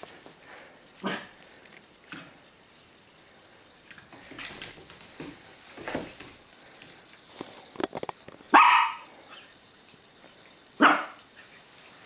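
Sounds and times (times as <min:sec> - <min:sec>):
dog barking: 0:08.5 - 0:09.1, 0:10.8 - 0:11.2.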